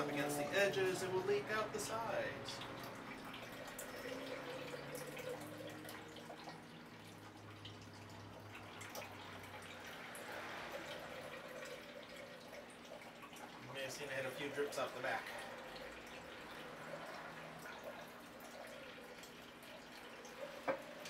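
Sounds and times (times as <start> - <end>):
juice dripping into glass jar: 0.0 - 21.0.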